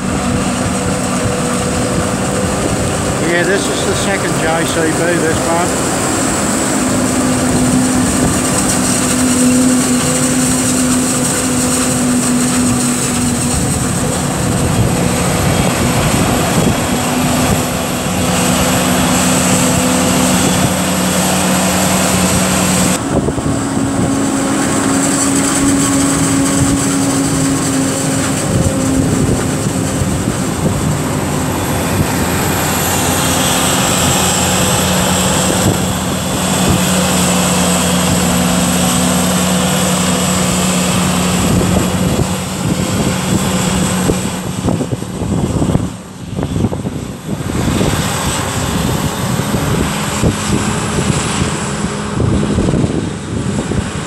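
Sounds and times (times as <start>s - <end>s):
forage harvester engine drone: 0.0s - 54.0s
tractor engine: 0.0s - 54.0s.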